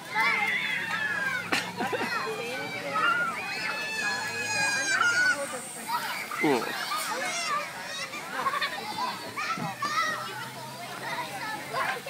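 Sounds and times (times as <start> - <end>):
children shouting and squealing: 0.0 - 12.0.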